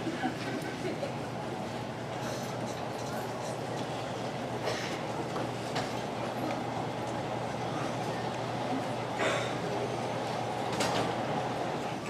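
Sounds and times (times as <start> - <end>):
audience murmur: 0.0 - 12.0.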